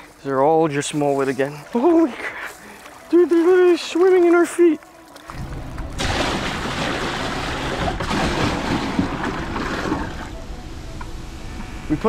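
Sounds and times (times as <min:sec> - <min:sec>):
surf washing and splashing: 0:00.9 - 0:10.4.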